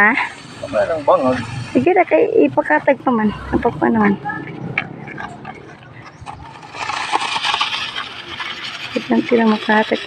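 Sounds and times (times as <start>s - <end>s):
rake rustling through grain: 5.1s - 10.0s.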